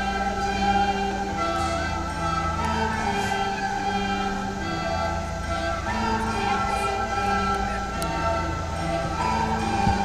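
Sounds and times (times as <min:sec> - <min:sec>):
children playing recorders: 0:00.0 - 0:10.0.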